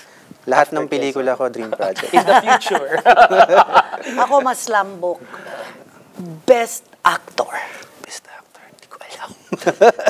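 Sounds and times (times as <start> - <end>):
man chuckling: 9.5 - 10.0.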